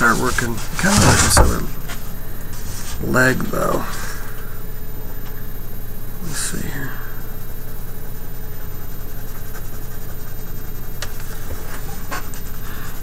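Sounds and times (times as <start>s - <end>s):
low electrical hum: 0.0s - 13.0s
pencil scratching on paper: 9.0s - 12.6s.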